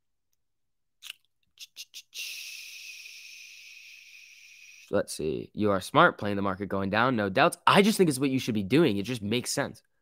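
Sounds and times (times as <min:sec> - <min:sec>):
mouth clicks: 0:01.0 - 0:04.9
person breathing out: 0:01.6 - 0:04.9.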